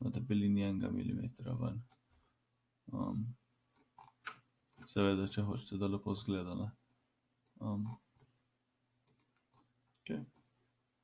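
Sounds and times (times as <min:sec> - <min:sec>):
computer mouse clicks: 0:03.7 - 0:04.9, 0:09.0 - 0:10.5.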